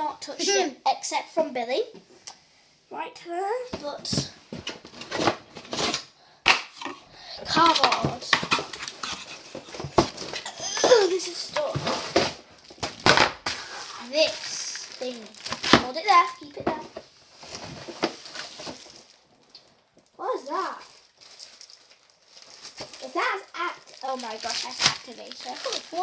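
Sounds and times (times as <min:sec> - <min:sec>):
child's voice: 0:00.0 - 0:02.0, 0:02.9 - 0:04.4, 0:07.4 - 0:08.4, 0:10.5 - 0:12.0, 0:13.9 - 0:17.0, 0:20.2 - 0:20.9, 0:23.0 - 0:26.0
plastic bags crinkling: 0:07.4 - 0:26.0.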